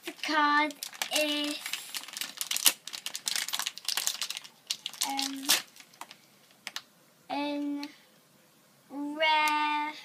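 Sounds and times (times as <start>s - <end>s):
foil packet crinkling: 0.0s - 6.8s.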